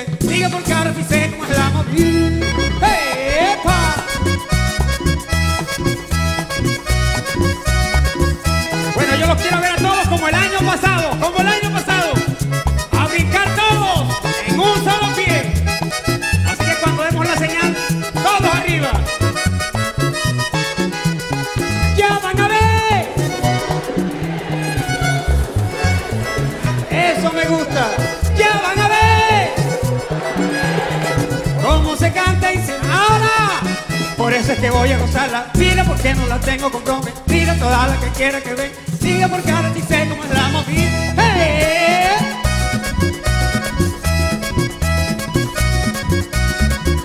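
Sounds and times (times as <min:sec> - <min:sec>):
accordion melody: 0:00.0 - 0:47.0
bass line: 0:00.0 - 0:47.0
steady low beat: 0:22.0 - 0:33.1.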